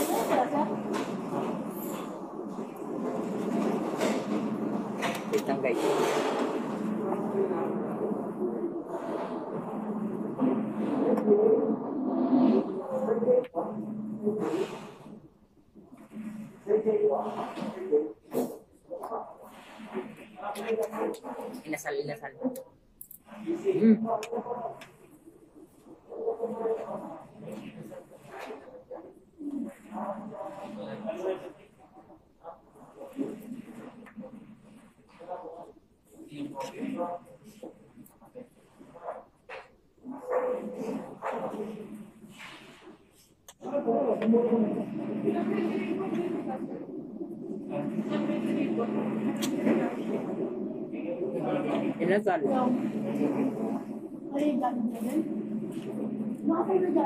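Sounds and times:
faint hum: 0:00.0 - 0:57.0
restaurant room din: 0:00.0 - 0:57.0.

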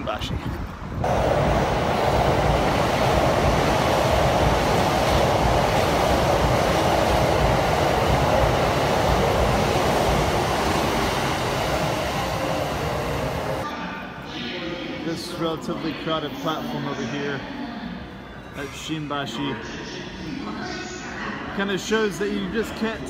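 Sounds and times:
electric train passing at speed: 0:00.8 - 0:13.7.

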